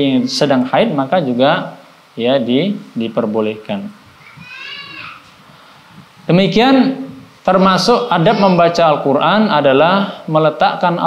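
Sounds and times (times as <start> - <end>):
high-pitched animal call: 4.2 - 5.2.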